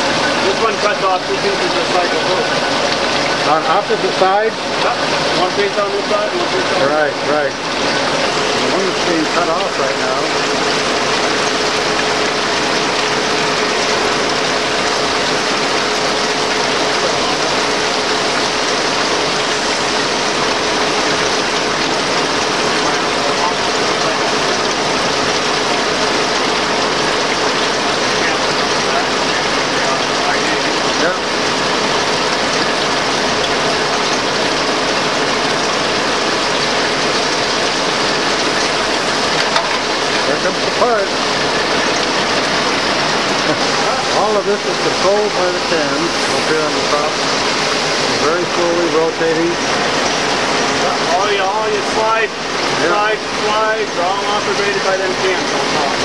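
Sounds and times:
cutting oil splashing: 0:00.0 - 0:56.0
lathe running under cut: 0:00.0 - 0:56.0.

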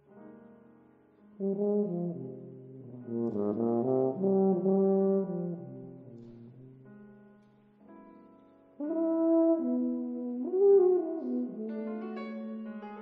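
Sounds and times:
bass tuba playing: 0:01.4 - 0:06.2, 0:08.8 - 0:12.7.

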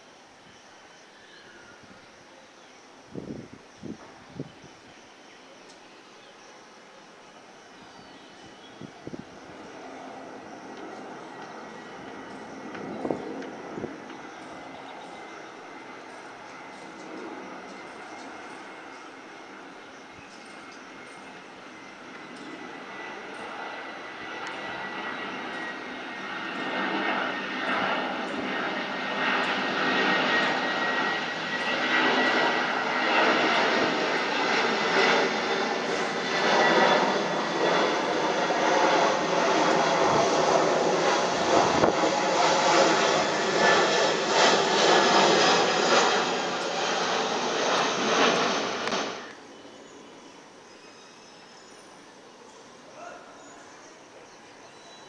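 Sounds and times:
faint high engine whine: 0:00.0 - 0:55.0
jet airliner passing overhead: 0:00.0 - 0:55.0.

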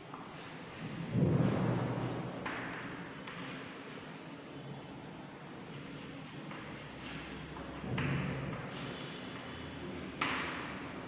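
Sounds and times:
chalk writing on a blackboard: 0:00.1 - 0:04.5, 0:05.6 - 0:11.0.

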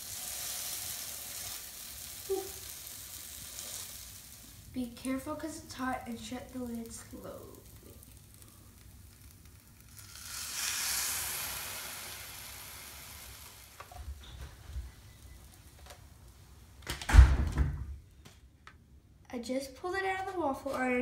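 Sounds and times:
waffle batter sizzling: 0:00.0 - 0:16.8
loud thump: 0:17.1 - 0:18.0.

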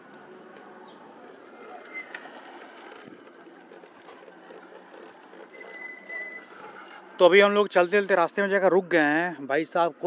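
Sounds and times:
electric bike riding noise: 0:00.2 - 0:07.7.

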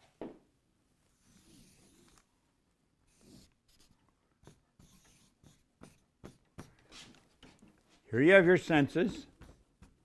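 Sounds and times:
marker scratching on paper: 0:01.1 - 0:02.3, 0:03.0 - 0:07.8, 0:08.4 - 0:10.0.

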